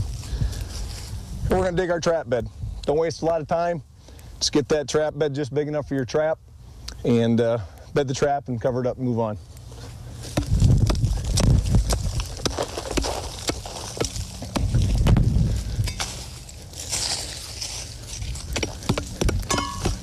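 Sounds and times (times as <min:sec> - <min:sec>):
loose dirt scraping: 0:09.4 - 0:20.0
shovel chopping and scraping dirt: 0:10.2 - 0:17.6, 0:18.2 - 0:20.0
heavy shovel thuds: 0:10.3 - 0:11.6, 0:12.4 - 0:16.4, 0:18.5 - 0:20.0.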